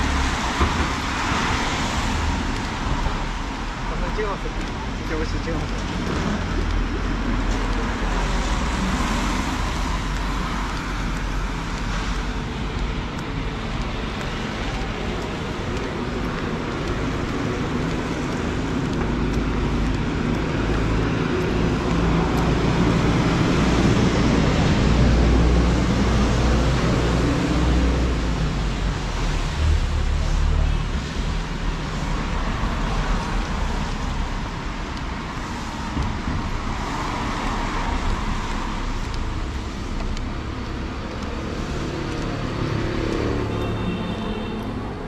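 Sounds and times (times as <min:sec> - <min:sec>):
cars and tyres on wet road: 0:00.0 - 0:45.0.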